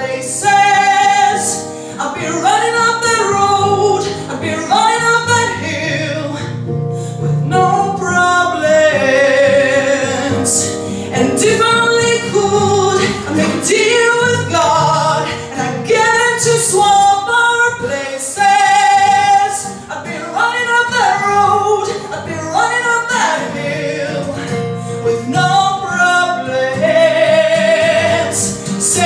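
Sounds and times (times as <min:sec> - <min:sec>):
woman singing into a microphone: 0:00.0 - 0:29.0.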